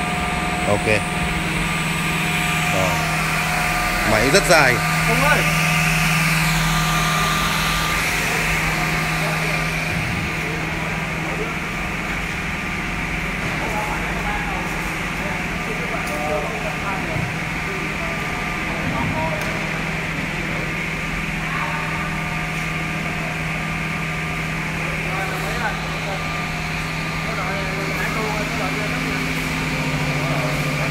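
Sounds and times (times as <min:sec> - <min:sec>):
machine motor hum: 0:00.0 - 0:30.9.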